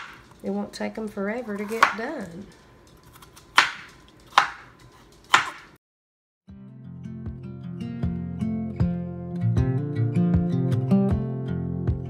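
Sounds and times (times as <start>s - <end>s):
knife chopping on wooden board: 0.0s - 0.3s, 1.4s - 2.4s, 3.1s - 5.8s.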